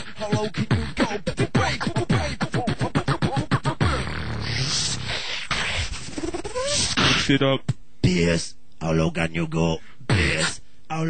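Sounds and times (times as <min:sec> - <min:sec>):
breathy beatbox hissing: 0:00.0 - 0:07.8, 0:10.1 - 0:10.7
steady low hum: 0:00.0 - 0:11.0.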